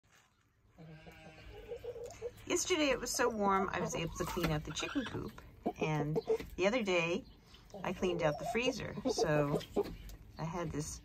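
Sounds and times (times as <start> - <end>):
hen clucking softly: 0.7 - 6.5, 7.6 - 10.2.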